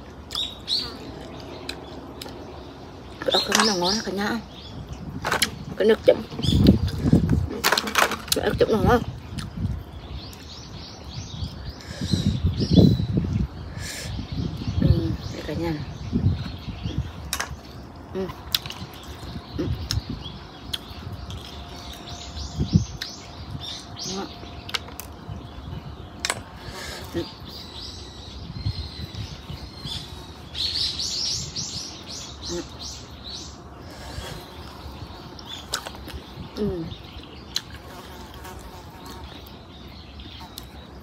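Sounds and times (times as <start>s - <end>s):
small birds chirping: 0.0s - 41.0s.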